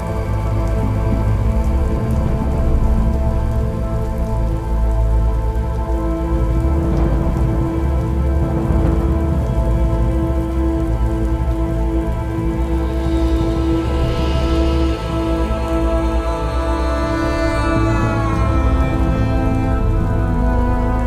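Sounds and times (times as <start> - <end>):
deep low drone: 0.0 - 21.0
slow instrumental music: 0.0 - 21.0
steady rain: 0.0 - 21.0.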